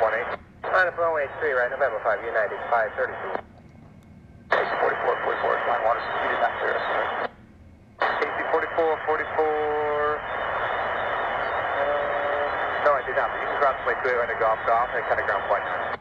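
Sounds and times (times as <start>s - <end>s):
open radio channel hiss: 0.0s - 3.5s, 4.5s - 7.4s, 8.0s - 16.0s
pilot voice over radio static: 0.0s - 3.5s, 4.5s - 7.3s, 8.0s - 10.4s, 11.4s - 16.0s.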